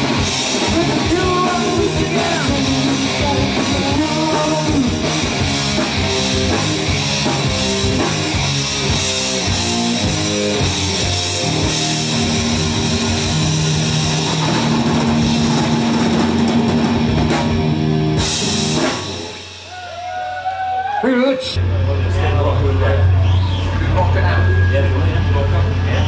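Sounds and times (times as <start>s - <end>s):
electric guitar riff: 0.0s - 19.7s
drum kit: 0.0s - 20.6s
bass guitar: 0.0s - 26.0s.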